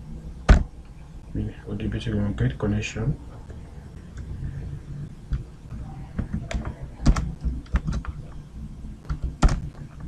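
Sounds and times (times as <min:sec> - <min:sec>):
computer keyboard typing: 0:05.3 - 0:08.4, 0:09.0 - 0:10.0.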